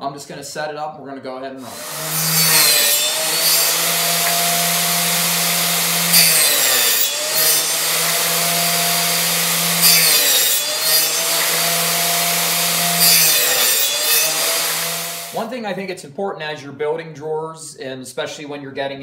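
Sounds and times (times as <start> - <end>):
table saw cutting wood: 1.6 - 15.4.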